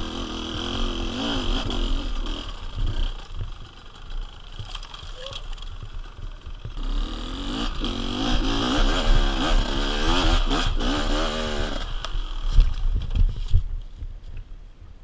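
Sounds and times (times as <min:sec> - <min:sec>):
motorcycle engine revving hard: 0:00.0 - 0:03.5, 0:06.7 - 0:12.0.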